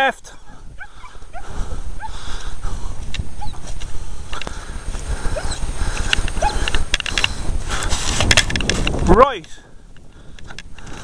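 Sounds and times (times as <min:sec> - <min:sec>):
wind rumbling on microphone: 0:00.0 - 0:11.0
footsteps on grass: 0:00.6 - 0:09.2.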